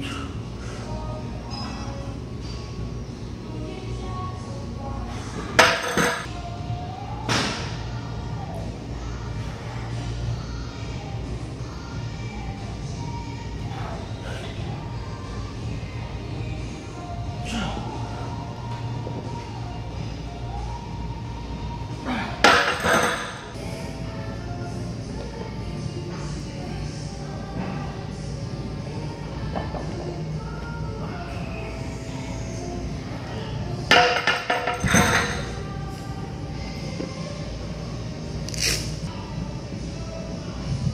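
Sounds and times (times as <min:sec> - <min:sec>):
background music: 0:00.0 - 0:40.9.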